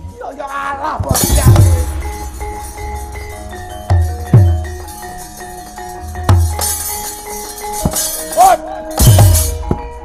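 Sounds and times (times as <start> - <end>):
deep drum stroke: 1.1 - 4.9.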